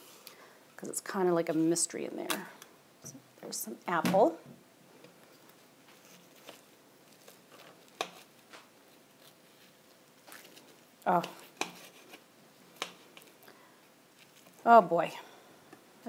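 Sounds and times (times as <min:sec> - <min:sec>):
knife cutting crisp pastry: 0:06.0 - 0:08.4, 0:11.2 - 0:12.2.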